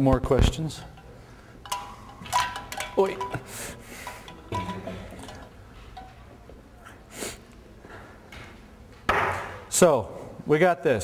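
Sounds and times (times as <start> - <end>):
hard apparatus clinking and knocking: 0.8 - 6.2.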